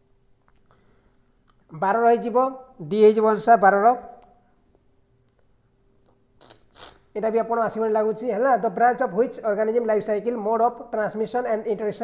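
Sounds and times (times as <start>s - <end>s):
man's mouth noises: 6.0s - 7.2s.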